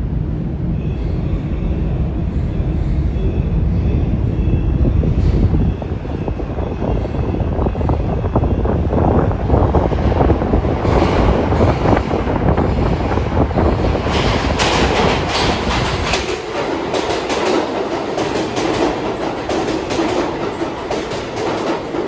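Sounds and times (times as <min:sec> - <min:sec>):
subway train rumbling: 0:00.0 - 0:22.0.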